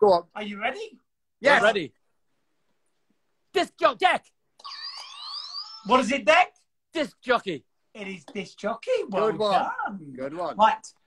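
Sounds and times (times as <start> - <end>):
electronic buzzer with rising tones: 4.6 - 6.1.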